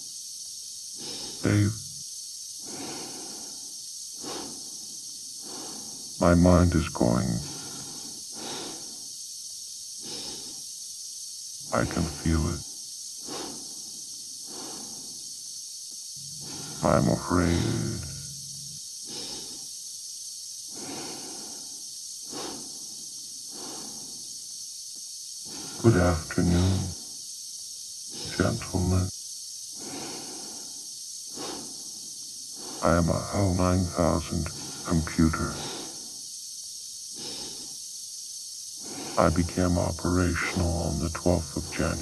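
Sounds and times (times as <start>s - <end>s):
steady hiss: 0.0s - 42.0s
steady low hum: 0.0s - 42.0s
breathing inside a helmet: 0.9s - 2.0s, 2.6s - 6.2s, 7.2s - 9.2s, 10.0s - 10.8s, 12.4s - 15.6s, 16.4s - 19.8s, 20.7s - 24.6s, 25.4s - 27.1s, 29.7s - 36.3s, 37.1s - 37.9s, 38.7s - 39.8s.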